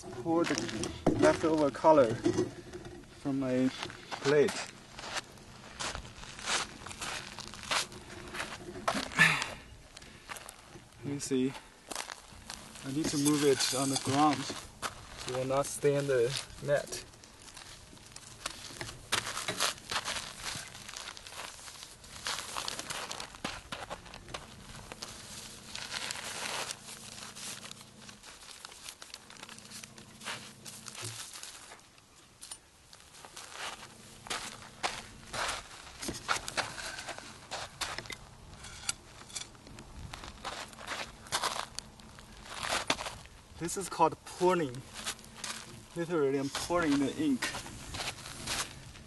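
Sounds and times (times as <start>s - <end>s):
gravel crunching: 0.0s - 49.0s
wet paper rustling and crinkling: 12.1s - 31.9s.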